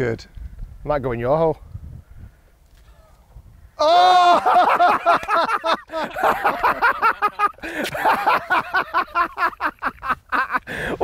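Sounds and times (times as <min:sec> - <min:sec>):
men laughing and exclaiming: 0:03.8 - 0:11.0.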